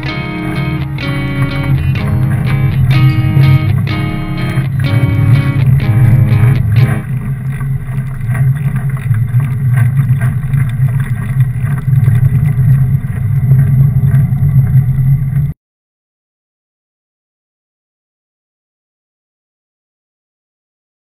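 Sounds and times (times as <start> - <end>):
guitar music: 0.0 - 7.2
wind and riding rumble: 1.9 - 15.5.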